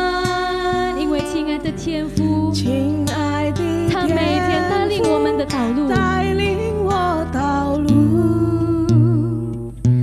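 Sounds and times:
acoustic guitar: 0.0s - 10.0s
vocalists singing slow song: 0.0s - 10.0s.

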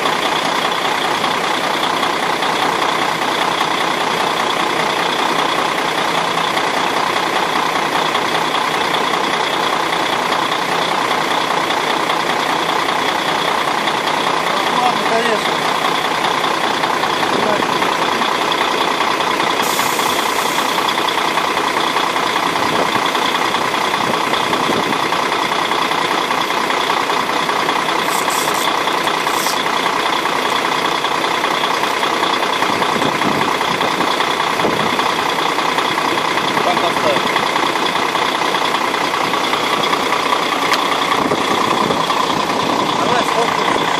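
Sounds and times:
diesel truck engine idling: 0.0s - 43.9s.

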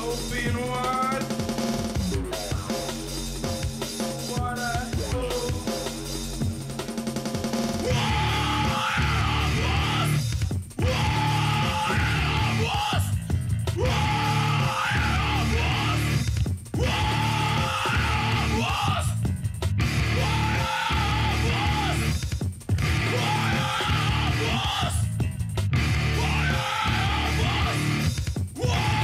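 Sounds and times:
bass and drums: 0.0s - 29.0s
distorted guitars: 0.0s - 29.0s
heavy metal band playing: 0.0s - 29.0s
person yelling vocals: 7.8s - 10.2s, 10.8s - 13.1s, 13.8s - 16.2s, 16.8s - 19.2s, 20.1s - 22.1s, 23.0s - 25.1s, 26.1s - 28.0s, 28.6s - 29.0s.

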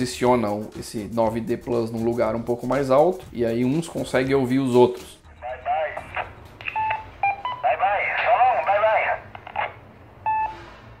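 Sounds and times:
voice over radio speaker: 5.4s - 6.4s, 7.6s - 9.8s
short electronic beeps: 6.7s - 7.7s, 10.2s - 10.9s.

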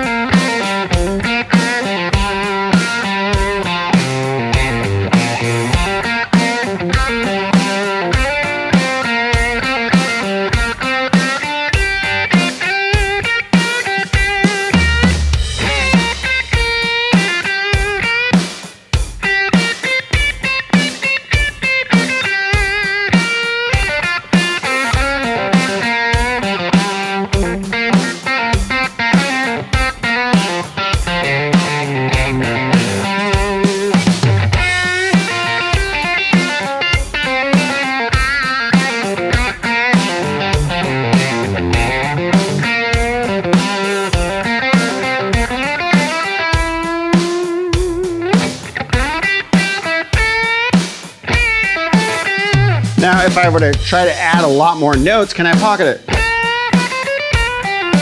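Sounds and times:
drum-kit groove: 0.0s - 58.0s
electric guitar lead lines: 0.0s - 58.0s.

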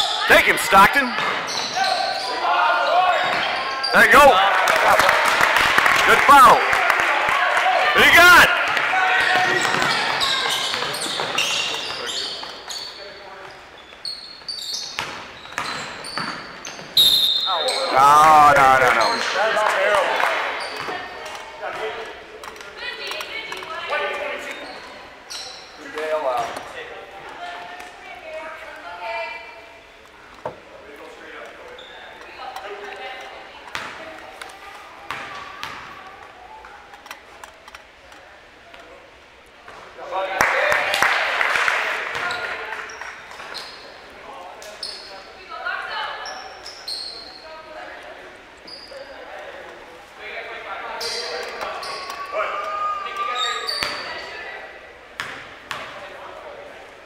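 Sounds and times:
loud shouting: 1.8s - 10.5s
basketball bouncing on floor: 55.2s - 55.9s.

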